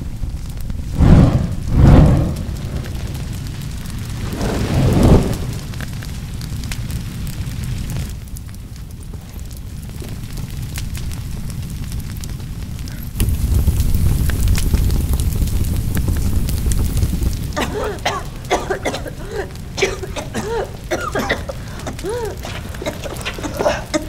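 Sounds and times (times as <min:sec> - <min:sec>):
fire crackling: 0:00.0 - 0:24.0
low rumble of flames: 0:00.0 - 0:24.0
person coughing and crying: 0:17.6 - 0:24.0.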